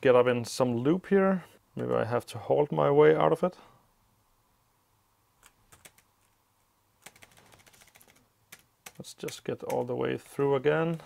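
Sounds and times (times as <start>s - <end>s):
faint laptop keyboard typing: 5.4s - 6.4s, 7.0s - 11.0s.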